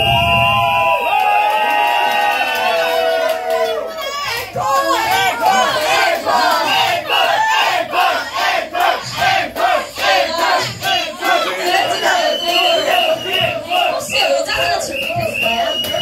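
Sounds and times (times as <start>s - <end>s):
crowd voices: 2.5s - 16.0s
woman chanting through microphone: 4.0s - 6.9s, 8.1s - 15.7s.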